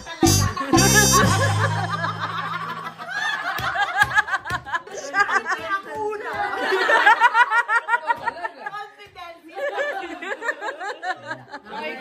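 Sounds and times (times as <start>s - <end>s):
women laughing: 0.0s - 9.0s, 9.6s - 12.0s.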